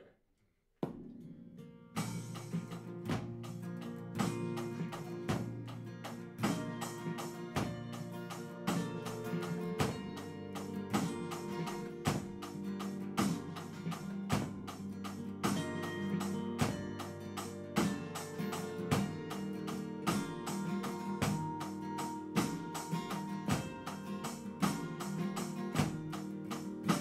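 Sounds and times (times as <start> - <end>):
acoustic guitar strumming chords: 0.9 - 27.0
drum kit steady beat: 2.0 - 27.0.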